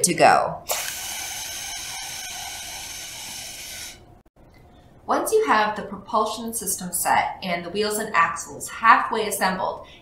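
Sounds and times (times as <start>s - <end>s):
air hissing out of balloon: 0.7s - 4.2s.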